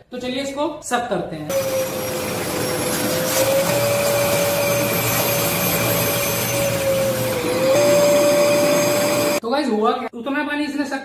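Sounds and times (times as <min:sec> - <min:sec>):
wet vacuum cleaner sucking water: 0:01.5 - 0:09.4.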